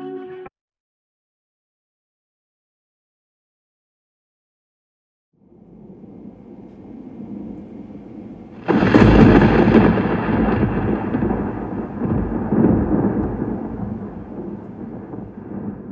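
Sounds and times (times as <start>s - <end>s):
low thunder rumble: 5.5s - 15.9s
loud thunderclap: 6.1s - 15.9s.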